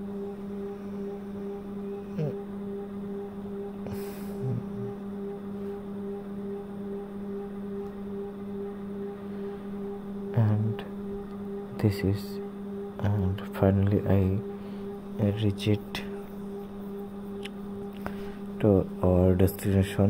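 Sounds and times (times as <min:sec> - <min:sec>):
steady low drone: 0:00.0 - 0:20.0.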